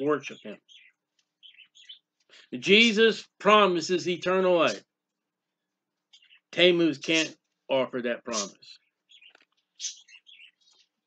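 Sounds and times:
bird chirping faintly: 0.0 - 11.0.

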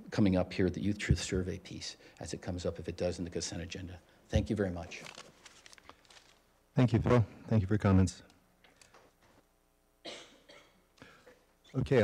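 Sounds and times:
short cough: 10.0 - 11.4.

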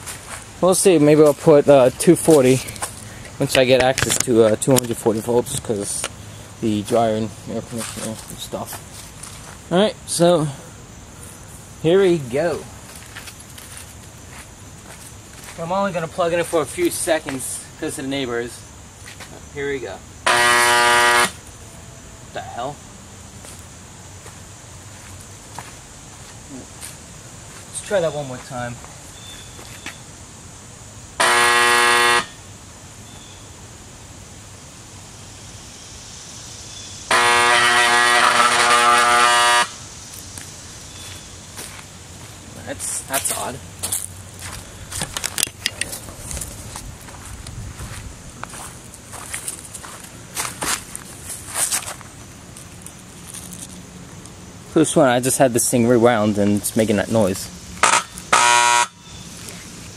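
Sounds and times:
footsteps on dirt and dry leaves: 0.0 - 5.1, 6.9 - 9.8, 12.7 - 17.5, 19.0 - 19.4, 23.4 - 30.0, 40.0 - 54.3
steady background hiss: 0.0 - 59.9
siren motor buzzing: 20.2 - 21.4, 31.2 - 32.4, 37.1 - 39.9, 57.8 - 59.0.

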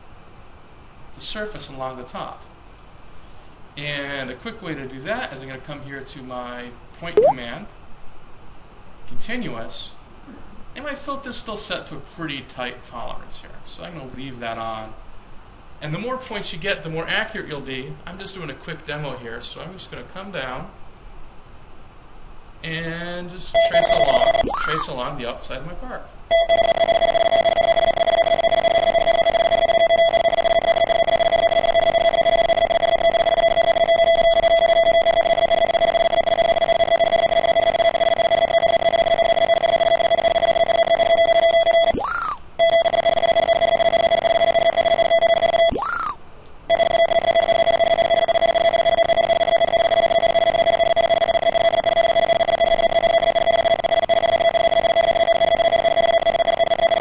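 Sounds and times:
steady electronic tone: 7.2 - 7.4, 26.8 - 57.0.

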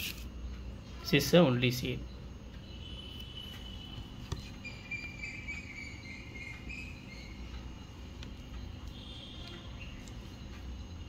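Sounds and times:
high-pitched chirping tones: 2.0 - 11.0.

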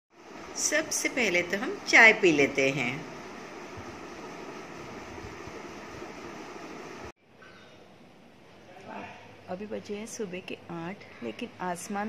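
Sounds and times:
fan or room hum: 0.1 - 12.0.

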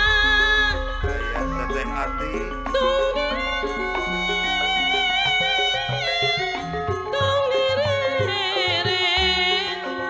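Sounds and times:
woman singing: 0.0 - 1.3, 2.6 - 10.0
gamelan music: 0.0 - 10.0.

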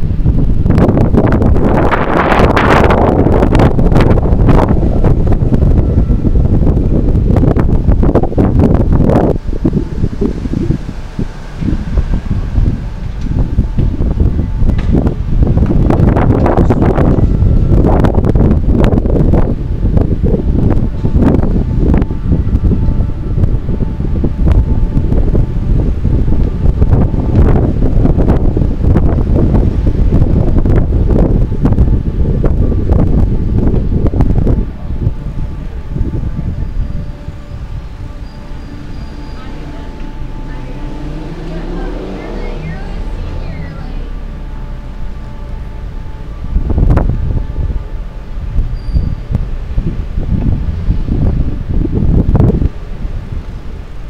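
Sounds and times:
city street traffic: 0.0 - 54.0
wind buffeting microphone: 0.0 - 54.0.

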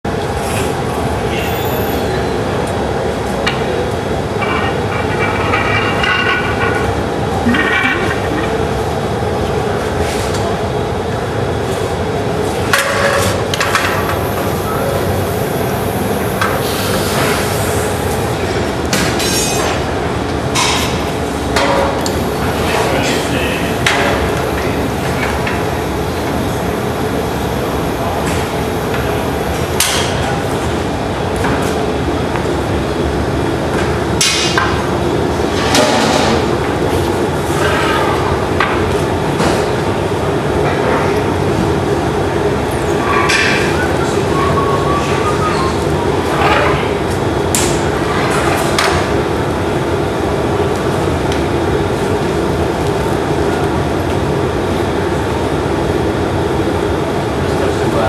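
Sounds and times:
gas furnaces roaring: 0.0 - 58.0.

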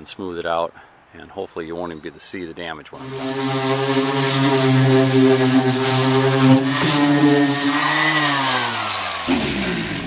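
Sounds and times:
angle grinder grinding fiberglass: 3.0 - 10.0.

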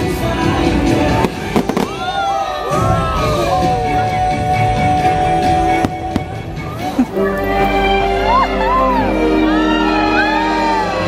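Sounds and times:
orchestral music: 0.7 - 11.0
firework bangs: 1.1 - 2.4.

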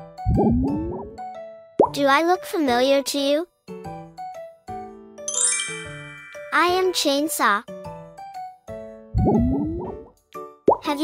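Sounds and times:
light children's music: 0.0 - 11.0
person speaking: 6.4 - 7.5.

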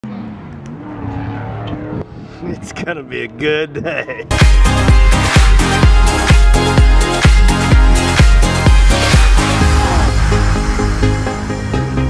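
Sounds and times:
car engine revving: 0.0 - 2.9, 4.4 - 12.0.

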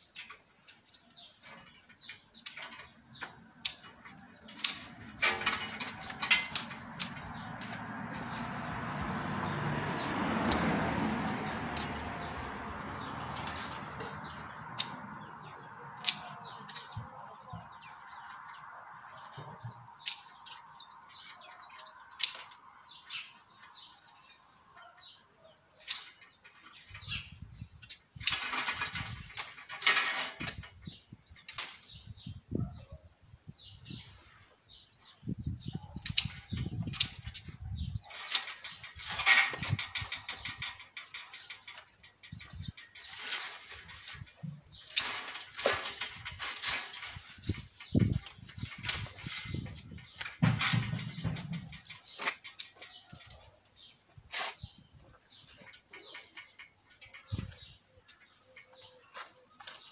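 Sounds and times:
pruning shears snipping: 3.5 - 9.7, 10.4 - 17.2, 20.0 - 22.6, 31.4 - 31.9, 36.0 - 37.3, 43.0 - 49.5.

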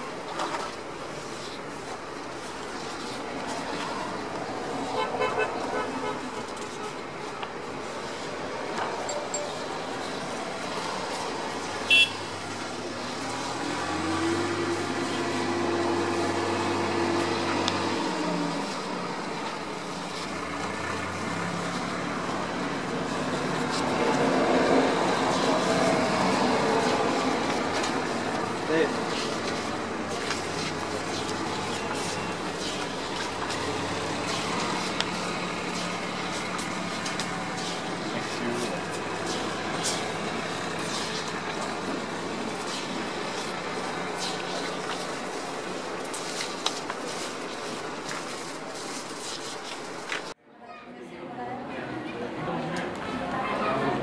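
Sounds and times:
road traffic noise: 0.0 - 54.0
steady background noise: 0.0 - 54.0
vehicle horn toot: 11.9 - 12.2.

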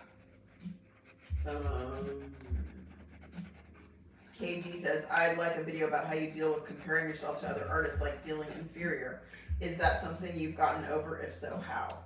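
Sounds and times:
pencil scratching on paper: 0.0 - 9.2.

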